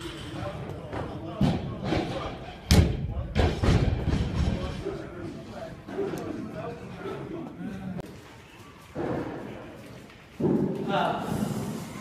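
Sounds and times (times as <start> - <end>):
heavy thuds: 1.0 - 4.8.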